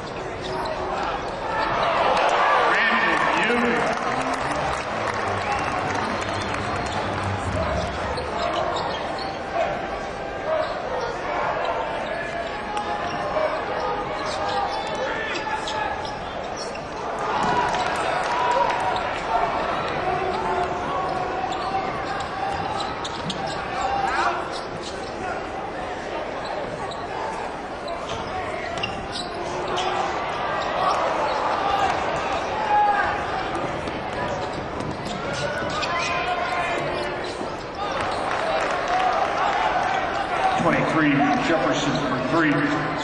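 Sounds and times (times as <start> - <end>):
crowd chatter: 0.0 - 43.0.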